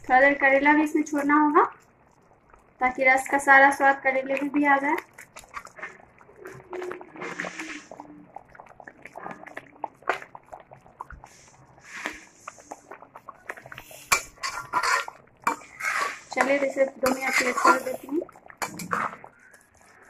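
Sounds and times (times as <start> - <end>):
gravy simmering in metal pan: 0.0 - 20.0
small clicks and soft pops: 1.0 - 6.8.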